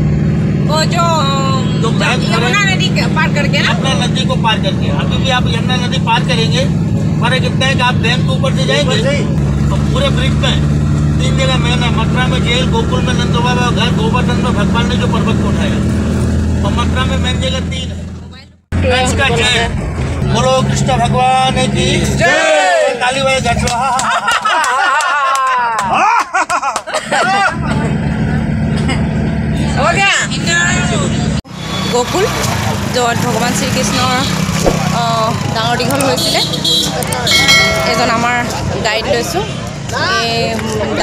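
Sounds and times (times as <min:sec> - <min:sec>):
vehicle engine and road drone: 0:00.0 - 0:24.2, 0:27.0 - 0:41.0
voices: 0:00.7 - 0:15.9, 0:16.6 - 0:26.2, 0:29.6 - 0:41.0.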